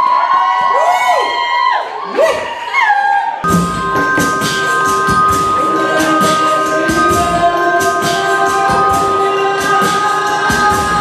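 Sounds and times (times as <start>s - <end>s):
high held vocal note: 3.4s - 11.0s
swooping vocal glides: 4.8s - 11.0s.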